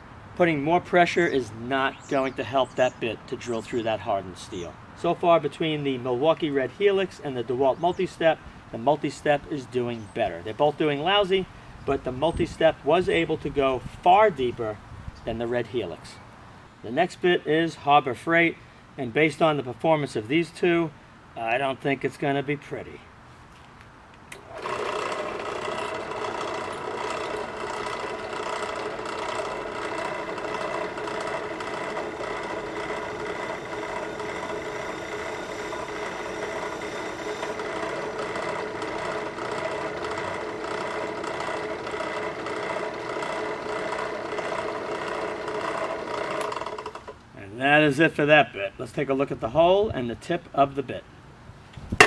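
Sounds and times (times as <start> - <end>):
drill press running: 24.3 - 47.2
drill bit grinding into steel: 24.4 - 47.2.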